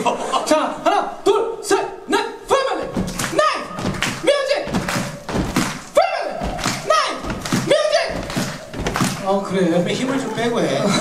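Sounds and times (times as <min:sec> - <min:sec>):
heavy stomping thuds: 0:02.8 - 0:09.5.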